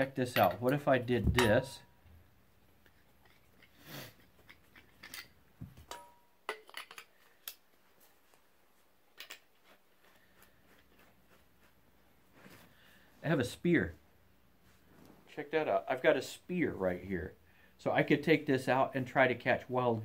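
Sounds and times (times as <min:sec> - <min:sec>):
light metallic clicks and clinks: 0:00.2 - 0:01.8, 0:04.4 - 0:07.6.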